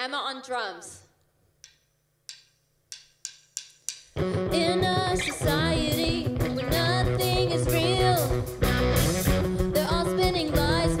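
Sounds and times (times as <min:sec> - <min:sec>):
drumsticks clicked together: 0:01.6 - 0:04.2.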